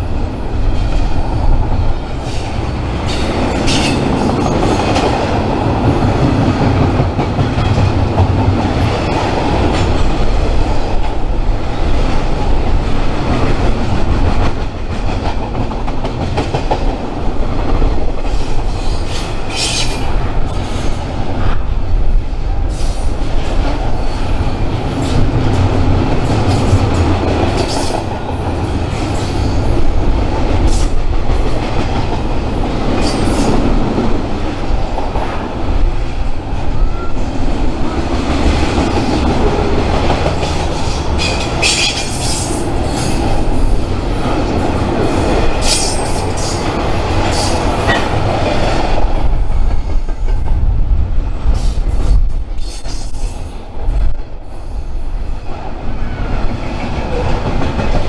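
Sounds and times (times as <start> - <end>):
train wheels rumbling on rails: 0.0 - 58.0.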